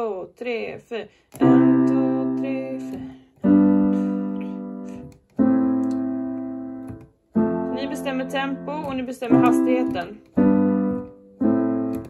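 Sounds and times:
digital piano chords: 1.4 - 12.0.

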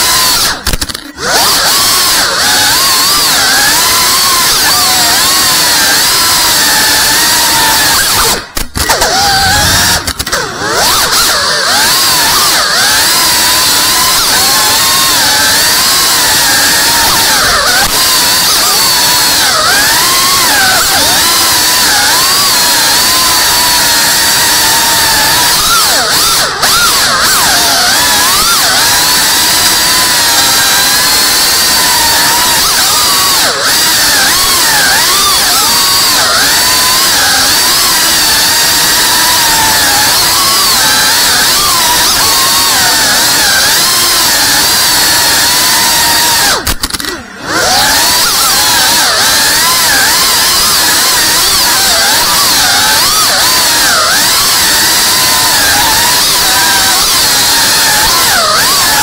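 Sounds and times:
drone motors whining: 0.0 - 59.0.

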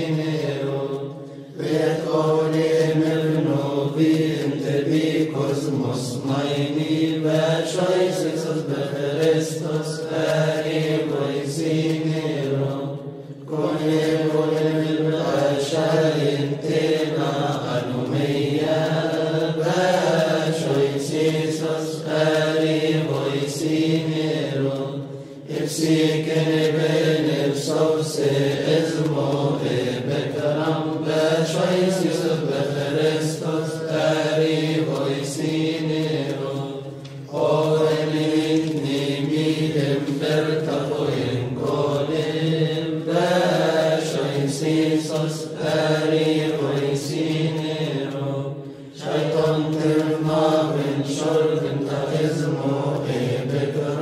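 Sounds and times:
men chanting over drone: 0.0 - 54.0.

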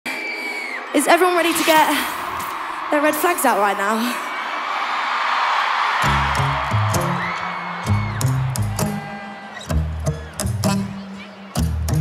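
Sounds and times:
stadium crowd cheering: 0.1 - 12.0.

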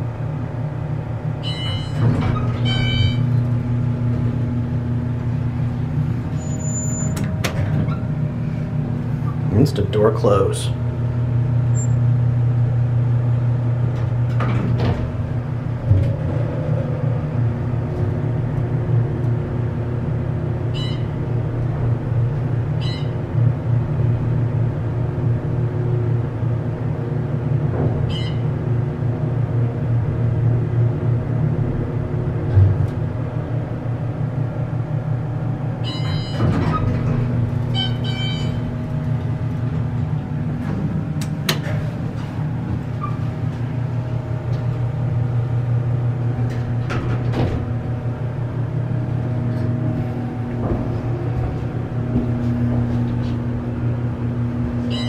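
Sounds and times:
elevator higher tones: 0.0 - 55.0
elevator low hum: 0.0 - 55.0.

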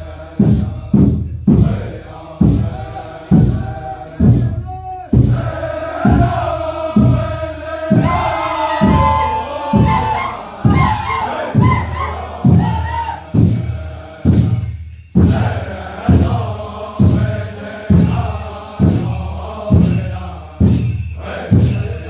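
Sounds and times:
group chanting: 0.0 - 22.0
steady drum beat: 0.0 - 22.0.

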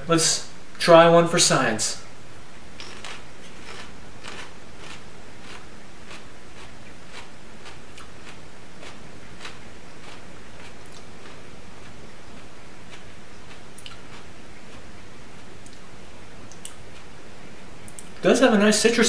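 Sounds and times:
chewing crunchy pepper: 2.8 - 15.0.

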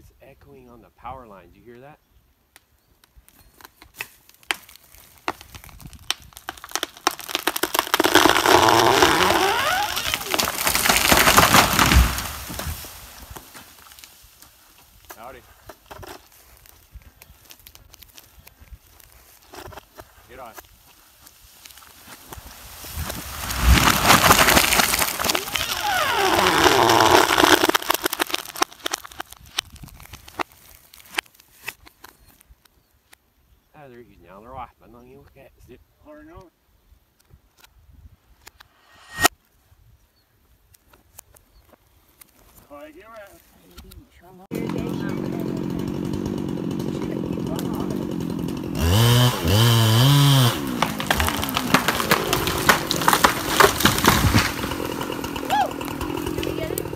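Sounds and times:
tree crashing on ground: 4.5 - 14.2, 21.7 - 31.2, 44.5 - 56.9
branches swishing through air: 22.0 - 25.2.

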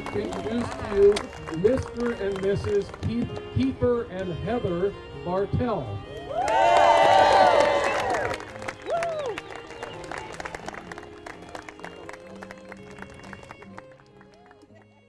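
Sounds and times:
clapping: 0.0 - 3.4, 6.4 - 15.0
music: 0.0 - 15.0
crowd cheering and whooping: 6.3 - 9.4.

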